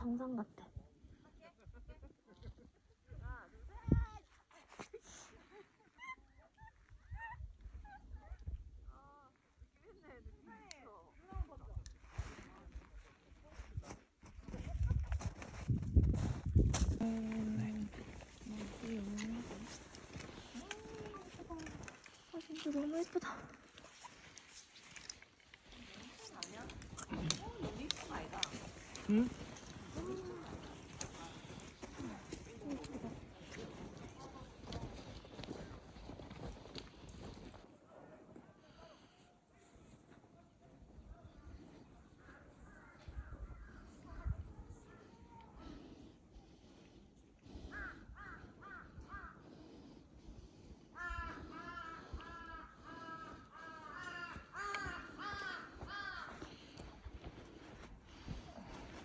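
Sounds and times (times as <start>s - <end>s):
footsteps in deep snow: 12.0s - 38.6s
crow cawing: 47.6s - 49.4s, 51.0s - 56.8s.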